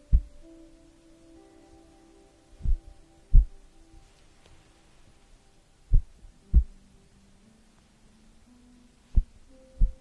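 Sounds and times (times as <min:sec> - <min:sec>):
faint steady tones: 0:00.0 - 0:10.0.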